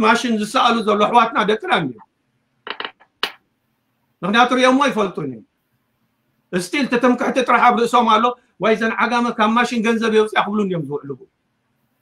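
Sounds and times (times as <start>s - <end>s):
small hard objects clicking: 2.6s - 3.4s.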